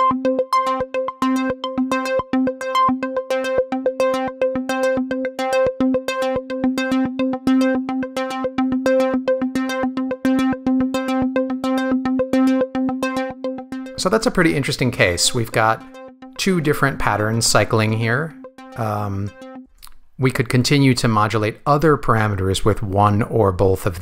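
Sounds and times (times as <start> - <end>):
synthesizer repeated short notes: 0.0 - 19.7.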